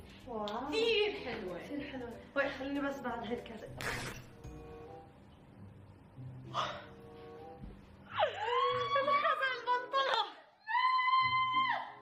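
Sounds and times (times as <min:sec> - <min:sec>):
faint background music: 0:00.0 - 0:12.0
woman squealing: 0:08.1 - 0:09.5, 0:10.6 - 0:12.0.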